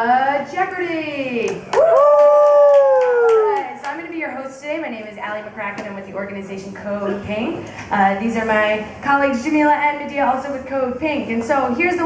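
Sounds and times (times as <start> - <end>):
hand claps: 1.5 - 4.0.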